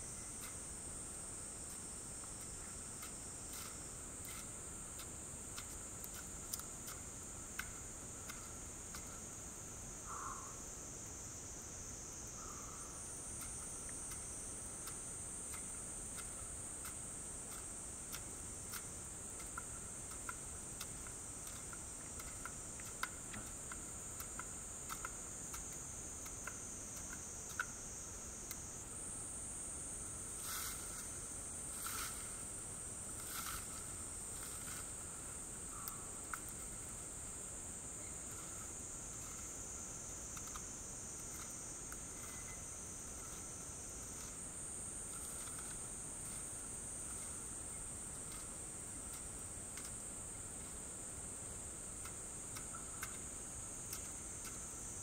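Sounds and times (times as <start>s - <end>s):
insects chorus: 0.0s - 55.0s.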